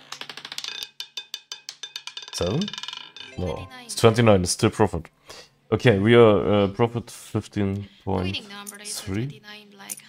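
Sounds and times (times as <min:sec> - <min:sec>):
roulette ball clattering on wheel: 0:00.0 - 0:03.4.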